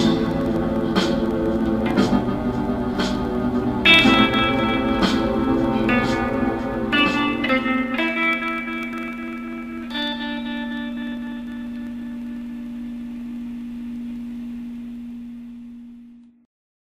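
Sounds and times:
black metal guitar chord ringing: 0.0s - 13.6s
held low note: 0.0s - 16.1s.

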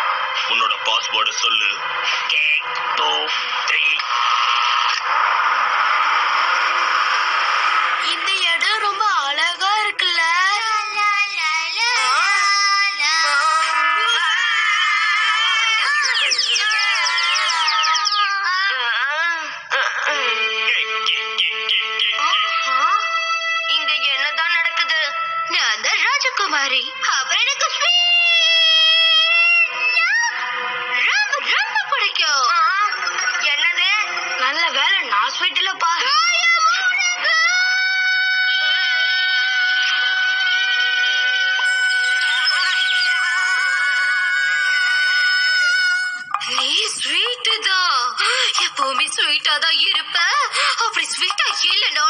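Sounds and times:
high-pitched cartoon voices crying: 11.6s - 22.6s, 41.6s - 46.4s, 48.2s - 48.7s
cartoon voice wailing: 11.7s - 20.3s
music with held notes: 19.8s - 23.9s
cartoon character long high cry: 41.6s - 46.2s.

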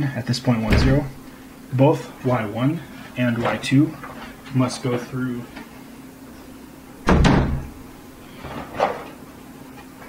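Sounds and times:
heavy deep thump: 0.7s - 1.2s, 7.0s - 7.8s.

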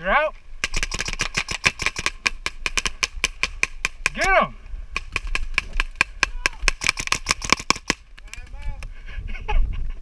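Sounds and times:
paintball marker rapid shots: 0.6s - 4.2s, 5.0s - 8.0s.

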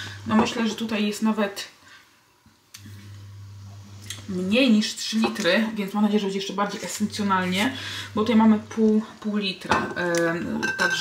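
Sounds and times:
steady low electrical hum: 0.0s - 11.0s.

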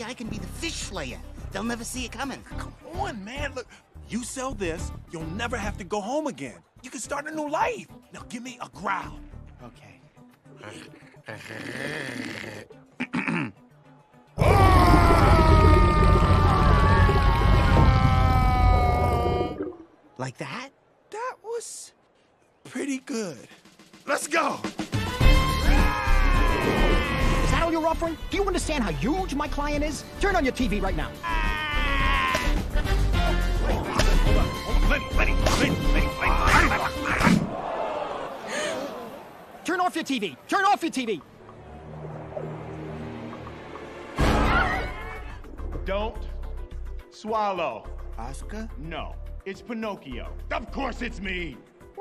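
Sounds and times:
animated film music: 0.0s - 20.4s, 22.7s - 37.8s, 39.7s - 52.0s
cartoon shark growling: 11.3s - 12.7s, 14.4s - 19.8s.

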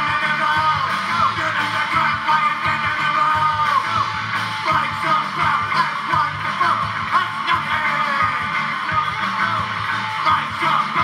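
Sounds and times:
drums: 0.0s - 11.0s
electric guitar: 0.0s - 11.0s.

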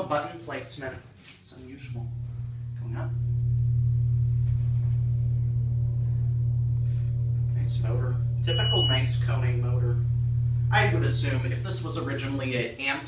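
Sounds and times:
elevator pump motor humming: 1.8s - 12.8s.

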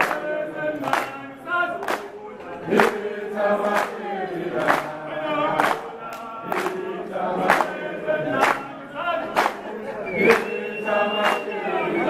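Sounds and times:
choir singing: 0.0s - 12.0s.

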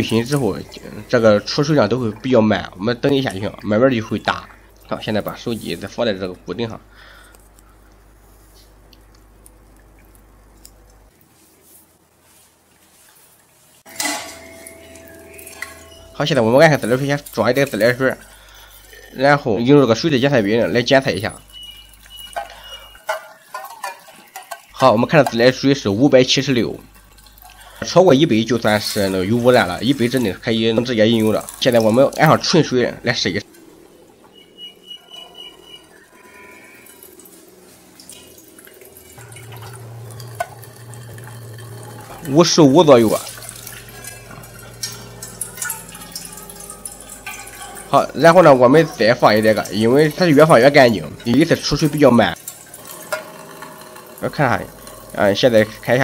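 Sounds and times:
water dripping into metal basin: 0.0s - 5.5s, 8.9s - 11.1s, 13.9s - 56.0s
metal ringing: 13.9s - 18.2s, 43.2s - 55.8s
metal bowl clanking in sink: 13.9s - 19.2s, 20.7s - 25.6s, 38.0s - 56.0s
low steady hum: 13.9s - 23.7s, 24.4s - 56.0s.

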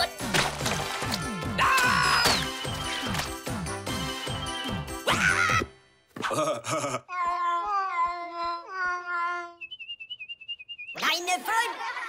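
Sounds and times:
whistled stepping melody: 2.3s - 4.9s, 9.6s - 11.2s.

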